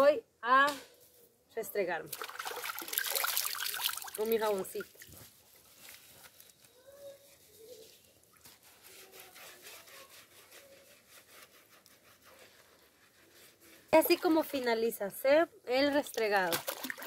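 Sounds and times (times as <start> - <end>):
soap scrubbing on wet hands: 2.1 - 14.7, 15.8 - 17.0.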